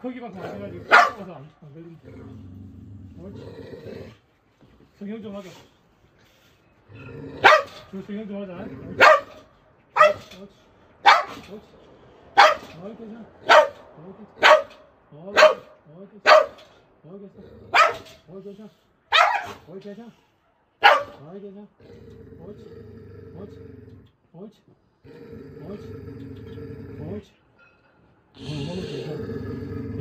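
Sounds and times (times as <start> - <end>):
dog barking: 0.4 - 1.3, 7.4 - 7.9, 9.0 - 10.4, 11.0 - 11.5, 12.4 - 12.8, 13.4 - 13.8, 14.4 - 16.7, 17.7 - 18.2, 19.1 - 19.7, 20.8 - 21.2.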